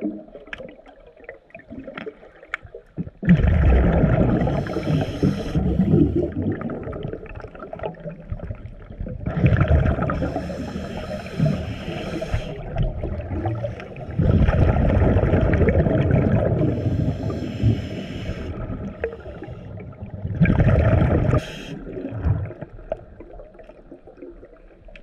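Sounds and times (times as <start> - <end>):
underwater breath bubbles: 3.0 - 24.6.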